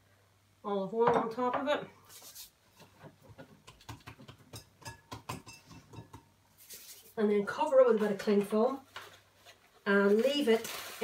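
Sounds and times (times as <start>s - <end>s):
hands patting bread dough: 3.3s - 5.5s.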